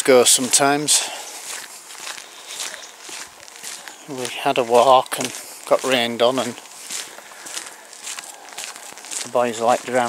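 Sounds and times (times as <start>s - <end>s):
footsteps of person walking: 0.0s - 10.0s.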